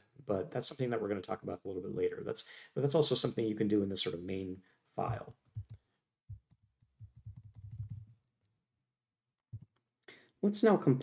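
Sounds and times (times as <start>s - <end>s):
keyboard typing: 5.6s - 8.1s.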